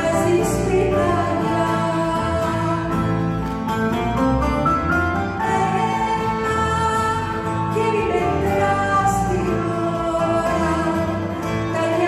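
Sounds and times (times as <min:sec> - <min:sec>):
woman singing: 0:00.0 - 0:03.2, 0:05.4 - 0:12.0
double bass: 0:00.0 - 0:12.0
grand piano: 0:00.0 - 0:12.0
plucked string instrument: 0:00.0 - 0:12.0.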